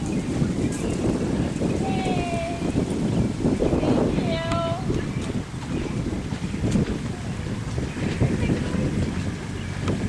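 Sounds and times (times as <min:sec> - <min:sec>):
wind buffeting microphone: 0:00.0 - 0:10.0
faint voices: 0:01.6 - 0:02.9, 0:03.6 - 0:10.0.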